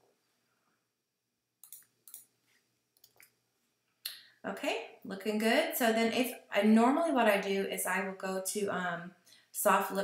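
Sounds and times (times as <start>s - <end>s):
faint mouse and key clicks: 1.6s - 2.3s.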